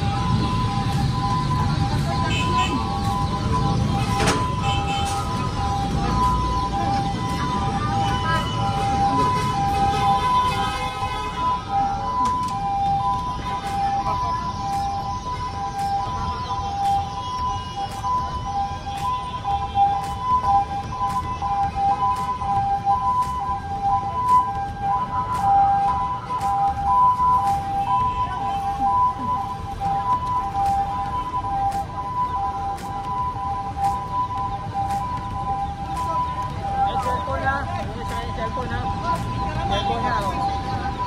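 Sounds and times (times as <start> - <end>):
music with steady beat: 0.0 - 41.0
street noise: 0.0 - 41.0
two-tone siren: 0.0 - 41.0.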